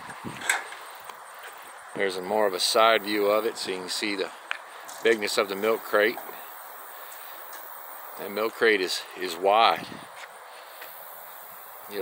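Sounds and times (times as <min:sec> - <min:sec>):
footsteps on paved path: 0:00.0 - 0:02.4, 0:03.8 - 0:06.5, 0:09.7 - 0:11.5
faint outdoor hiss: 0:00.0 - 0:12.0.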